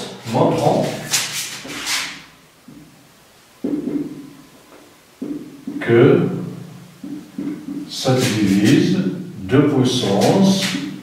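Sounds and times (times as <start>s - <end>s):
man talking: 0.0s - 1.2s, 5.8s - 6.6s, 7.9s - 10.9s.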